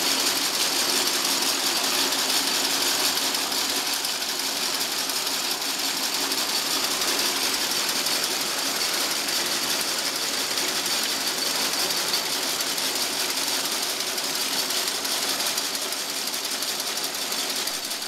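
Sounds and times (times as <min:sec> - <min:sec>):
processing machinery running: 0:00.0 - 0:18.0.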